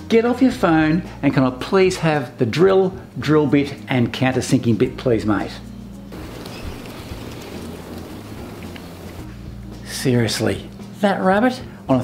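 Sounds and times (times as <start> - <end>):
steady hiss: 6.1 - 9.4.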